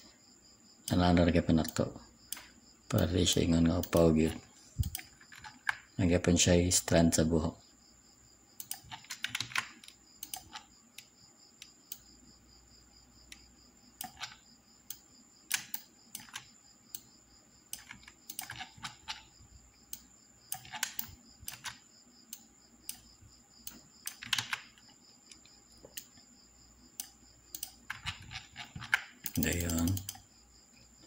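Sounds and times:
keyboard clicks: 0:00.9 - 0:05.9, 0:08.6 - 0:12.1, 0:13.3 - 0:17.1, 0:17.7 - 0:19.3, 0:19.9 - 0:23.1, 0:23.7 - 0:26.2, 0:27.0 - 0:30.3
computer mouse clicks: 0:01.6 - 0:05.9, 0:08.6 - 0:12.1, 0:13.2 - 0:17.1, 0:17.7 - 0:26.3, 0:26.9 - 0:30.9.

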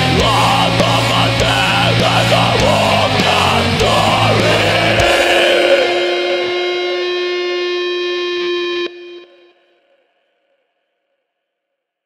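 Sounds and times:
black metal drums and bass: 0:00.0 - 0:06.6
distorted electric guitar chord ringing: 0:00.0 - 0:09.5.

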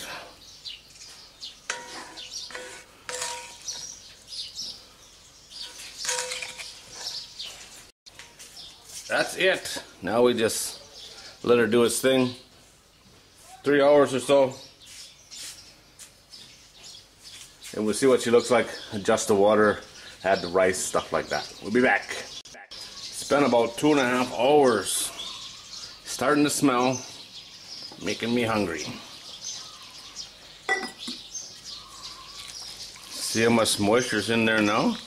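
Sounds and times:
birds chirping: 0:00.0 - 0:35.0
ceramic lid clink: 0:30.7 - 0:31.2.

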